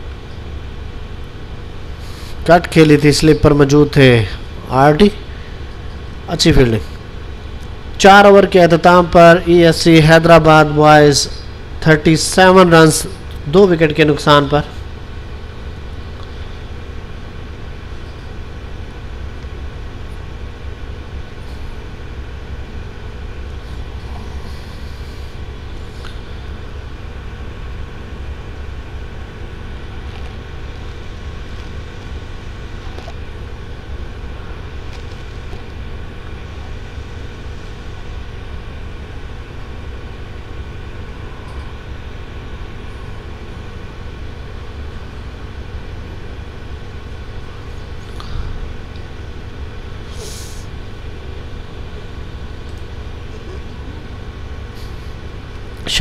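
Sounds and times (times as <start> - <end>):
low machine hum: 0.0 - 56.0.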